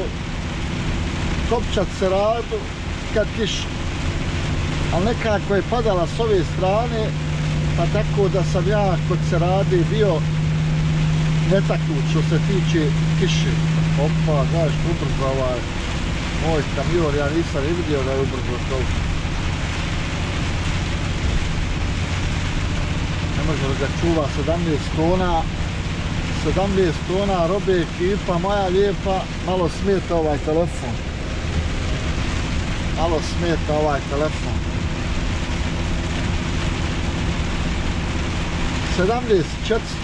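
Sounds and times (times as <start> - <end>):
rain on windscreen: 0.0 - 40.0
truck engine drone: 0.0 - 40.0
tyres hissing on wet road: 0.0 - 40.0.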